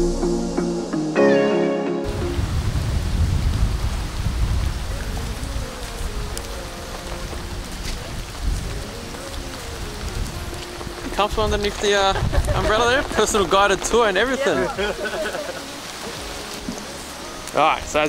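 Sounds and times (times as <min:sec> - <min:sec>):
background music: 0:00.0 - 0:02.6, 0:04.5 - 0:18.0
wind buffeting microphone: 0:02.1 - 0:15.1
steady rain: 0:02.1 - 0:18.0.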